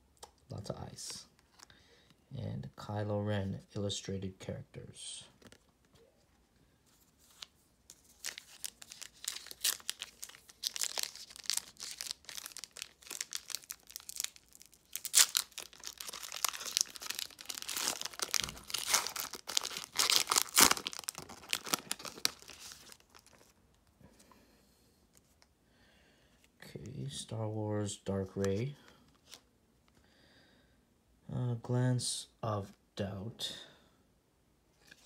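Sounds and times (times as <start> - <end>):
foil wrapper crinkling and tearing: 7.3 - 23.6.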